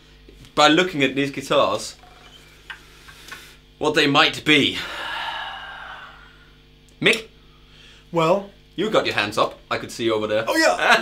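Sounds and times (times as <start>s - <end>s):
low electrical hum: 0.0s - 11.0s
person exhaling breathily: 4.8s - 6.6s.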